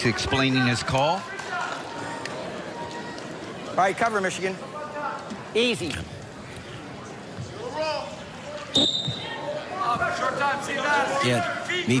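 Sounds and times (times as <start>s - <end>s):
voices and crowd noise: 0.0s - 12.0s
referee whistle blast: 8.7s - 9.3s.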